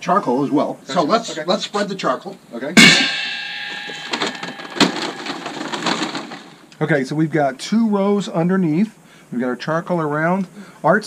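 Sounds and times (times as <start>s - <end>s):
metal pail knocking and ringing: 2.8s - 6.6s
charcoal briquettes clattering: 2.8s - 6.7s.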